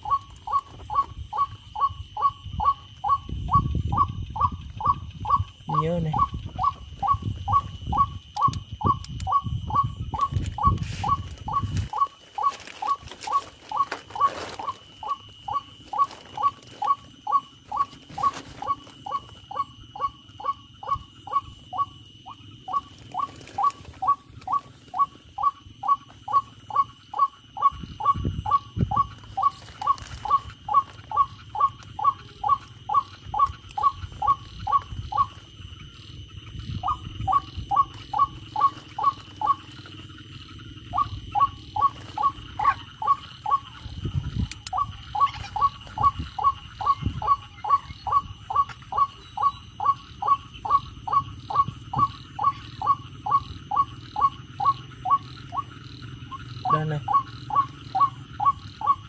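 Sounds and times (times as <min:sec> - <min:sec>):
bird call through speaker: 0:00.0 - 0:35.3.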